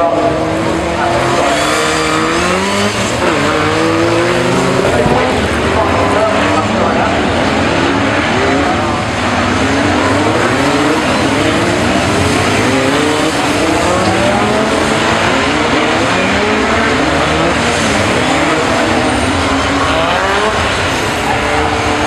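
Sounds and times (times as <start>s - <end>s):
racing car engines revving: 0.0s - 22.0s.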